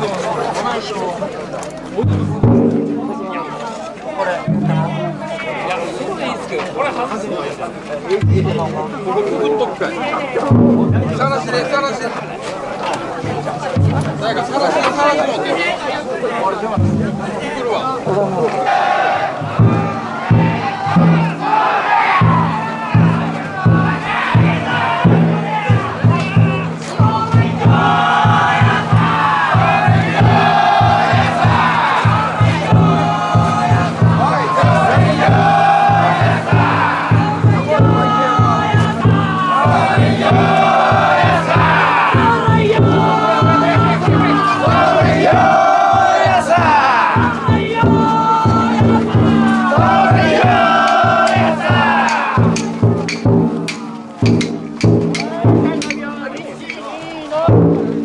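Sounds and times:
large drum beating: 0:02.0 - 0:07.0, 0:08.0 - 0:58.0
crowd shouting in chorus: 0:17.6 - 0:53.0.

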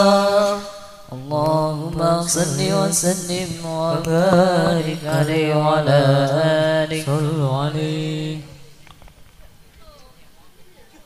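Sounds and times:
men singing through microphones: 0:00.0 - 0:08.9.

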